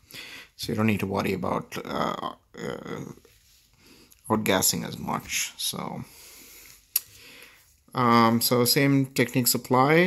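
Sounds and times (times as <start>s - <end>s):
breathing through the nose: 0.0s - 0.6s, 6.1s - 7.8s.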